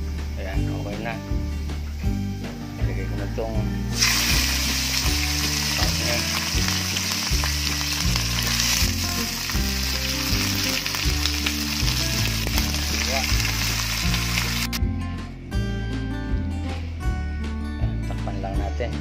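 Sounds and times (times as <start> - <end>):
meat sizzling in hot oil: 3.9 - 14.8.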